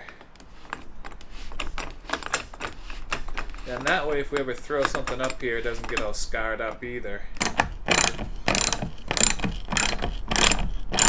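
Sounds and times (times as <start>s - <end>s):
ratchet wrench clicking: 7.4s - 11.0s.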